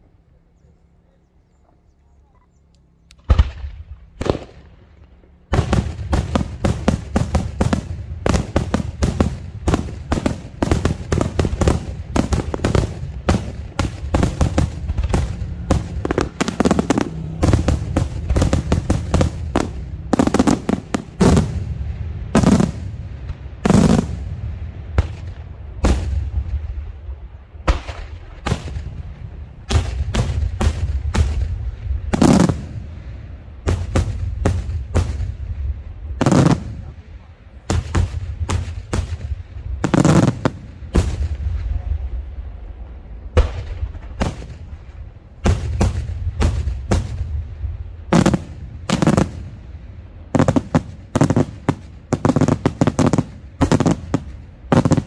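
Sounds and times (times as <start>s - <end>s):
loud firework booms: 3.2s - 4.8s, 5.5s - 55.0s
fireworks bursting: 3.2s - 55.0s
low rumble: 11.3s - 50.3s.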